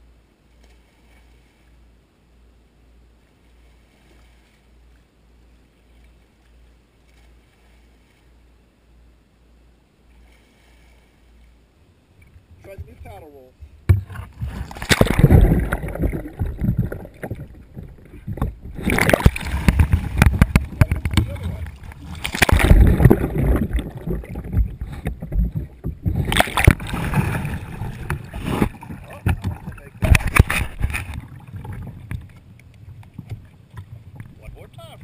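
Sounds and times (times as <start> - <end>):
water splashing around a kayak: 0.0 - 35.0
muffled underwater sound: 12.2 - 35.0.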